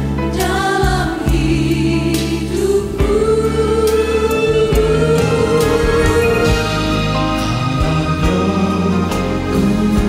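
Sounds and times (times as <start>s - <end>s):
musical accompaniment: 0.0s - 10.0s
choir singing held notes: 0.4s - 10.0s.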